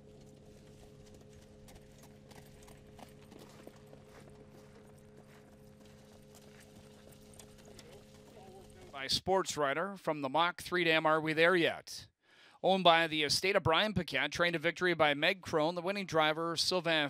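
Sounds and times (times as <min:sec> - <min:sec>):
faint hoofbeats: 0:00.0 - 0:09.0
low hum: 0:00.0 - 0:09.2.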